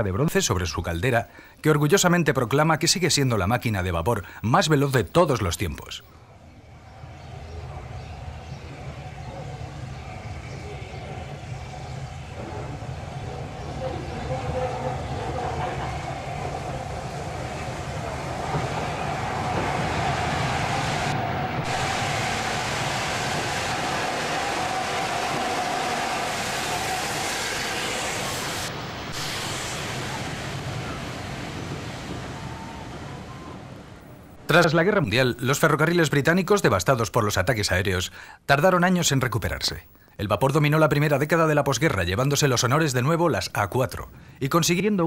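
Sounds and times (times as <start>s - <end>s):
steam locomotive passing: 6.2s - 35.8s
train wheels rolling on rails: 6.7s - 34.4s.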